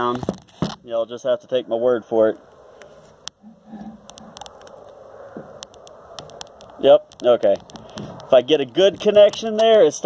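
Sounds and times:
light clicks and taps: 4.0 - 9.8.

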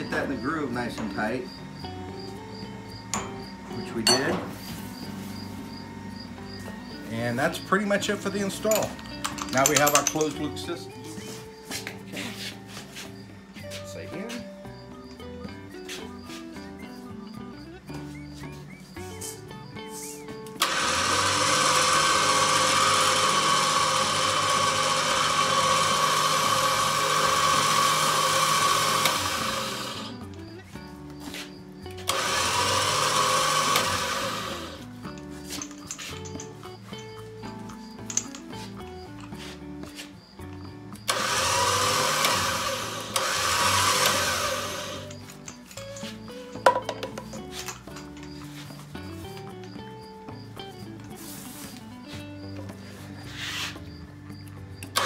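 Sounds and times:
electric winch motor reeling: 0.0 - 11.4, 20.4 - 30.5, 31.9 - 39.4, 40.5 - 46.7, 54.8 - 55.0.

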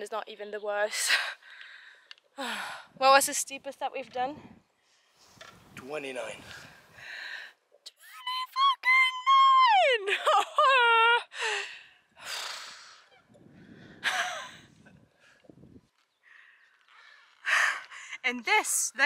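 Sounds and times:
woman's high-pitched wordless cry: 8.1 - 11.3
heavy breathing: 11.4 - 15.6.

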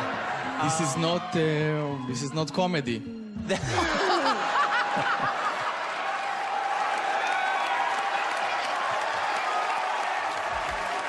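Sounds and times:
crowd din: 0.0 - 2.1, 3.4 - 7.1
audience laughing: 3.4 - 6.1.

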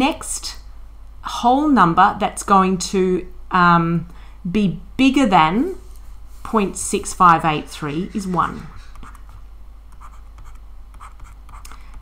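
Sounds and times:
steady low hum: 0.0 - 12.0
stylus scratching on screen: 6.5 - 12.0.

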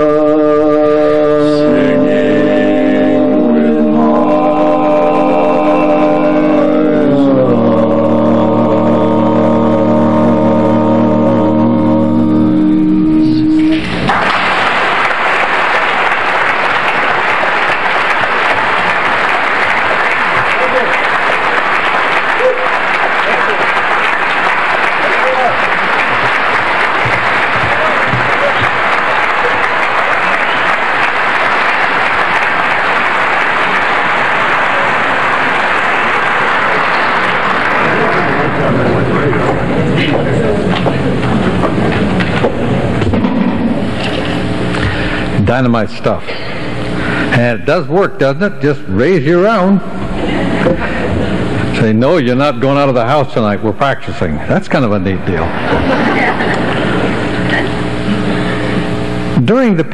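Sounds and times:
audience applause: 13.6 - 45.3, 49.5 - 51.8, 55.3 - 59.9
voices: 15.2 - 42.5.

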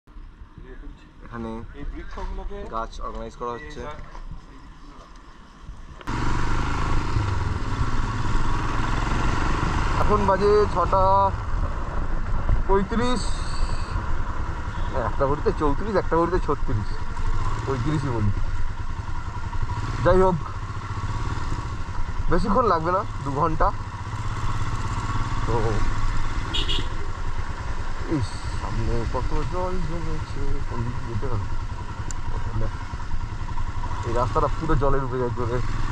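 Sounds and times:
faint outdoor background: 0.1 - 35.9
wind and road rush: 0.1 - 35.9
motorcycle engine running: 5.6 - 35.9.

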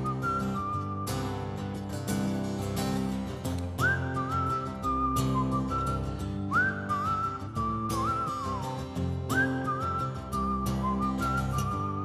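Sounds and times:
man whistling a melody: 0.0 - 2.3, 3.5 - 12.0
strummed acoustic guitar: 0.0 - 12.0.

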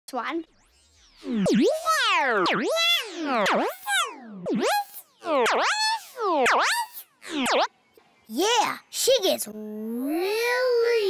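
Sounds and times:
synthesizer tones swooping in pitch: 0.5 - 7.9.

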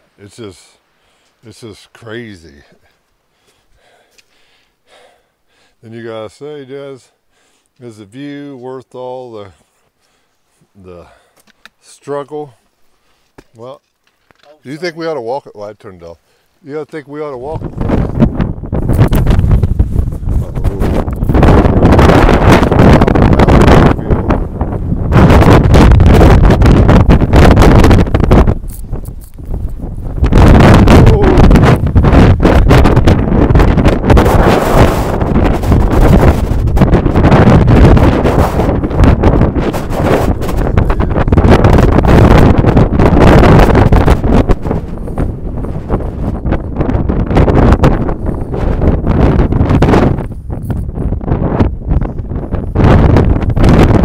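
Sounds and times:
wind buffeting microphone: 17.1 - 54.0.

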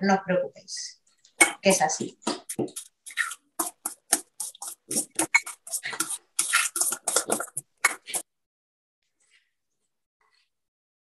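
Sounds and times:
batter stirred in glass bowl: 1.4 - 8.3.

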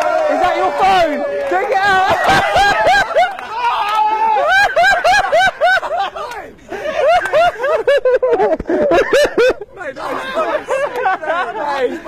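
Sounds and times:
man laughing hard: 1.8 - 3.6, 4.3 - 12.0.

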